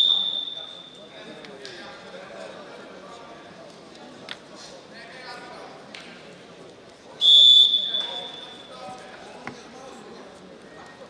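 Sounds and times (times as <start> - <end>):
referee's whistle blast: 0.0 - 1.0, 7.2 - 8.6.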